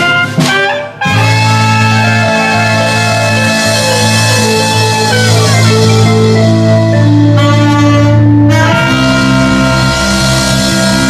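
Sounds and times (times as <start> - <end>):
live band playing: 0.0 - 11.0.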